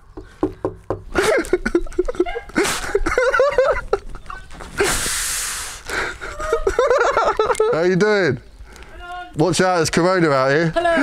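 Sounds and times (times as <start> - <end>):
sharp breathy gasp: 4.8 - 6.2.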